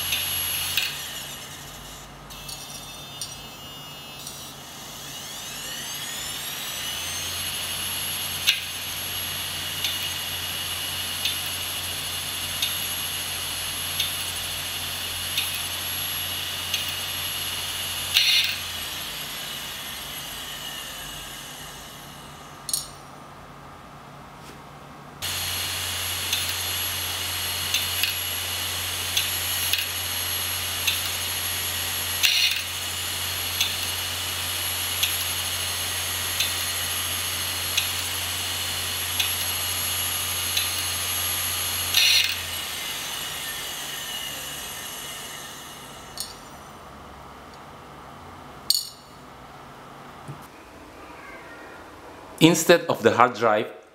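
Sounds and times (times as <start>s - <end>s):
hard drive whining: 0.0s - 22.7s, 25.2s - 47.6s.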